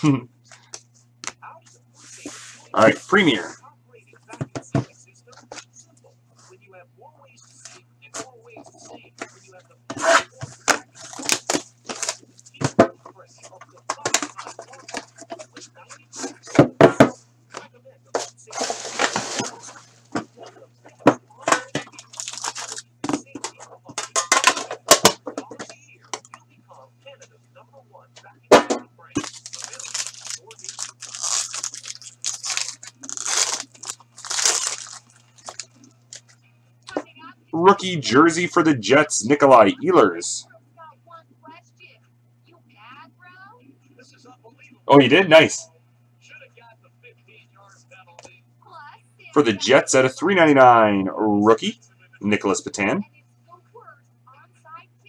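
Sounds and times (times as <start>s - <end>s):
low electrical hum: 0.0s - 55.0s
plastic wrap crinkling and tearing: 11.0s - 12.4s, 21.8s - 22.8s, 29.2s - 36.3s.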